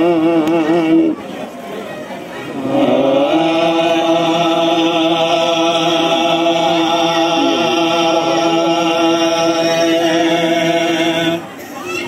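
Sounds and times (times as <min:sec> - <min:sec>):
men chanting devotional verse: 0:02.6 - 0:11.5.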